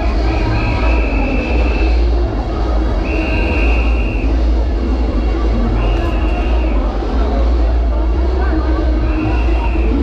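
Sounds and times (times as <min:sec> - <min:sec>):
deep sound-system bass: 0:00.0 - 0:10.0
high-pitched whistle blasts: 0:00.4 - 0:02.0, 0:03.0 - 0:04.4, 0:05.8 - 0:06.8, 0:09.0 - 0:10.0.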